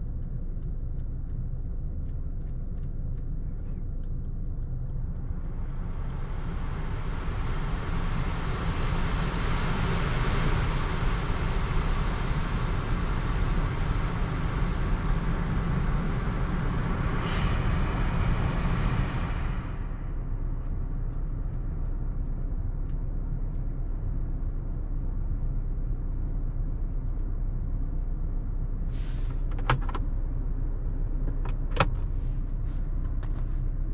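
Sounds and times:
car cabin low rumble: 0:00.0 - 0:33.9
wind and tyre noise: 0:00.0 - 0:33.9.

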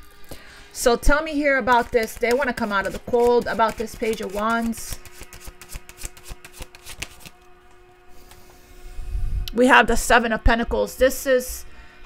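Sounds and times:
cards being shuffled: 0:01.6 - 0:07.5.

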